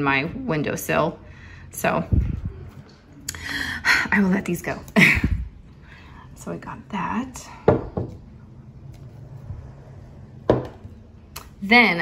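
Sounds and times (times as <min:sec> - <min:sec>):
glass object knocking on wood: 0:07.7 - 0:08.2, 0:10.5 - 0:10.8.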